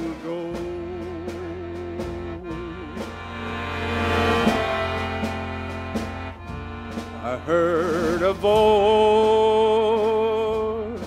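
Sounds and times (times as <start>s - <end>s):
accordion chords: 0.0s - 11.0s.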